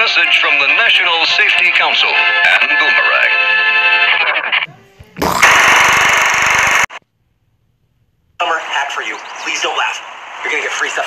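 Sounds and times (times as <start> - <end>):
harsh noise burst with rattle: 5.2 - 7.0.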